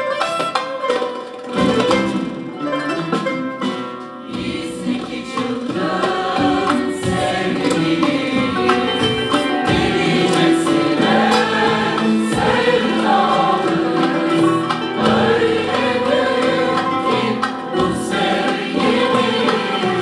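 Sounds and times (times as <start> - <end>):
hand drums: 0.0 - 20.0
plucked string instruments: 0.0 - 20.0
mixed choir singing: 4.2 - 20.0.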